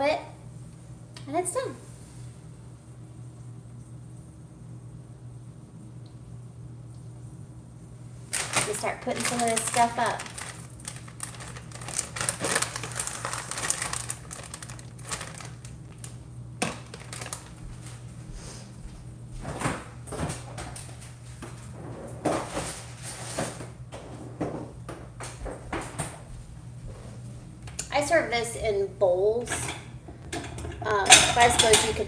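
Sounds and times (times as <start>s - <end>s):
steady low hum: 0.0s - 32.0s
plastic zip bag crinkling: 8.3s - 17.6s
kitchen items knocking: 29.5s - 32.0s.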